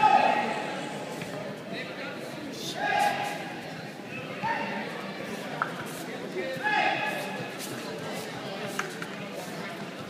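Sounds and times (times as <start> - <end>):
spectators chatter in a hall: 0.0 - 10.0.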